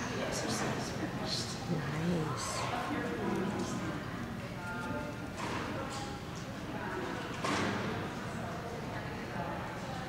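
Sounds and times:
voices murmuring in large hall: 0.0 - 10.0.

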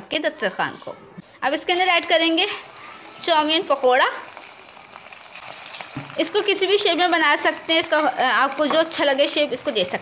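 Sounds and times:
batter sizzling in hot oil: 1.5 - 10.0.

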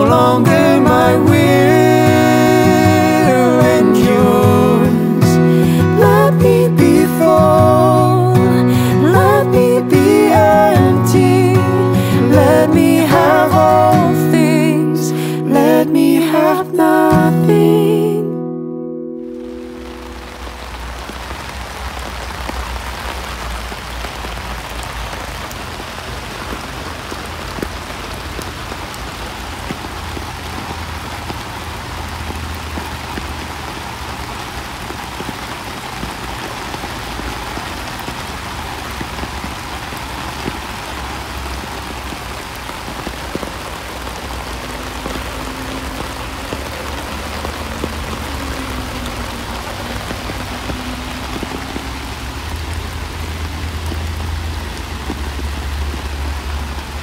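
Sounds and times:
raindrops ticking on umbrella: 0.0 - 18.0, 19.2 - 57.0
steady rain falling: 0.0 - 57.0.

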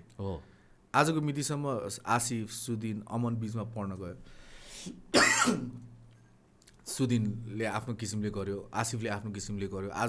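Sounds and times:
intake of breath: 4.2 - 5.0
man coughing: 5.1 - 5.8.

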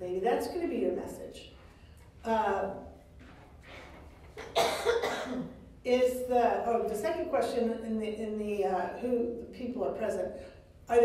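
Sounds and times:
woman coughing: 4.4 - 5.6.

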